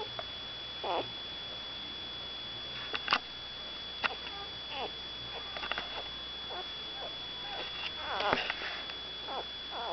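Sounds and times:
puppy whimpering: 0.8 - 1.1, 4.3 - 8.4, 9.3 - 9.9.

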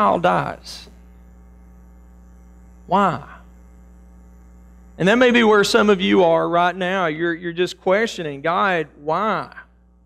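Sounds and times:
man speaking: 0.0 - 1.0, 2.9 - 3.5, 5.0 - 9.8
electrical mains hum: 0.0 - 10.0.

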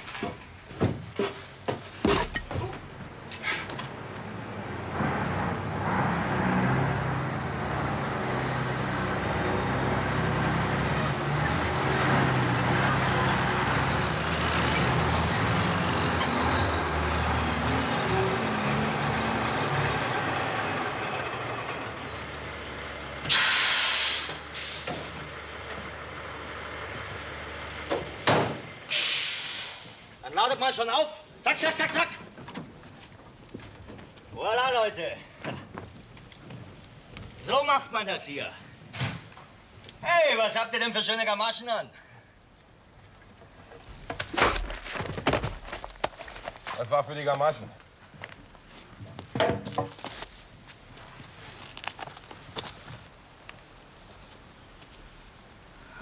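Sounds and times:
air brake hiss: 23.3 - 25.0, 28.9 - 30.1.

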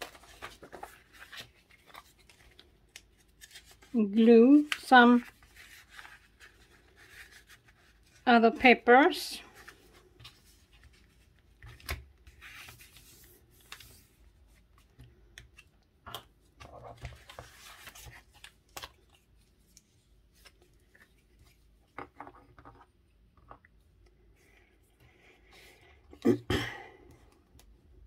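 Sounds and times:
paper rustling: 0.0 - 8.2, 9.5 - 15.7, 16.6 - 21.7.

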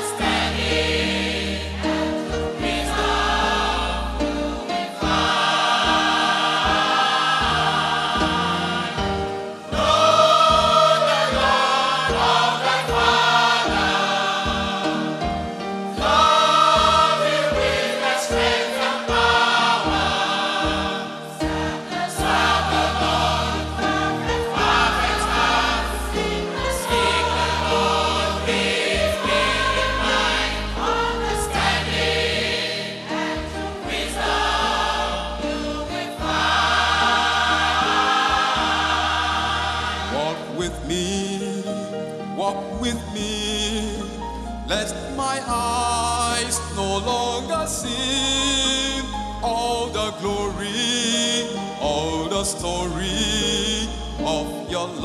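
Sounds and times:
choir singing gospel song: 0.0 - 55.0
instrumental backing: 0.0 - 55.0.

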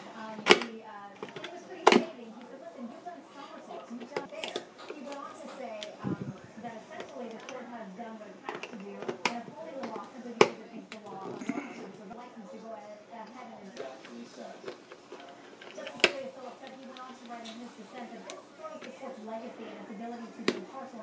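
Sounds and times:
broadcast speech: 0.0 - 21.0.

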